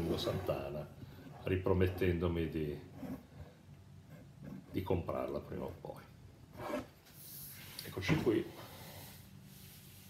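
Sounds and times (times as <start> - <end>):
wooden bat rubbing on wood: 0.0 - 2.2
faint hissing rub: 7.0 - 10.0.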